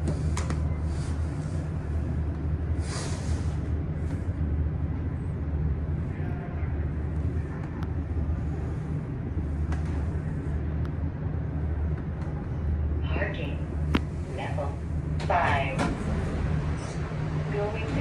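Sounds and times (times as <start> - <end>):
elevator hum and rumble: 0.0 - 18.0.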